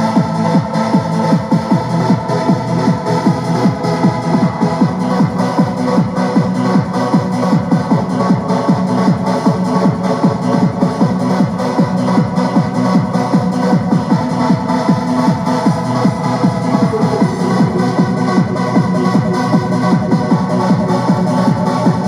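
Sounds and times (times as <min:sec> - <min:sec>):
hard house dance music: 0:00.0 - 0:22.0.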